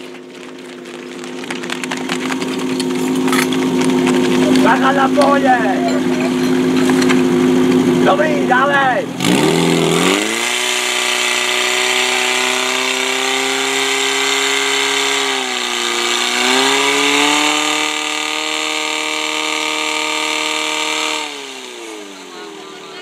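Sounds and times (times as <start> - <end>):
pump engine running at high revs: 0.0 - 23.0.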